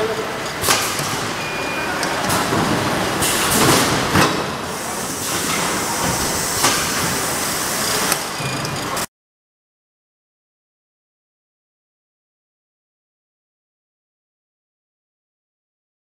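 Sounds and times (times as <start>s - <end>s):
packing machinery din: 0.3s - 9.1s
sharp mechanical clacks: 7.9s - 9.1s.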